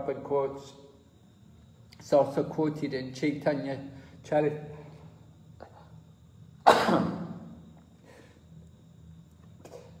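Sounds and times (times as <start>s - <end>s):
person coughing: 6.6s - 7.4s.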